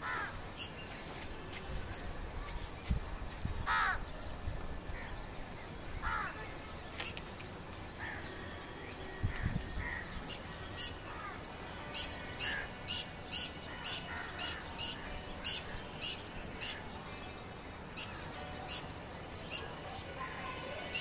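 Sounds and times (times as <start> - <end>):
birds chirping: 0.0 - 21.0.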